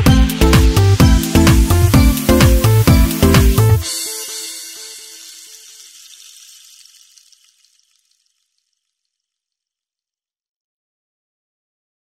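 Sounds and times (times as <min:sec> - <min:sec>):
electronic pop chord ringing in reverb: 0:00.0 - 0:05.9.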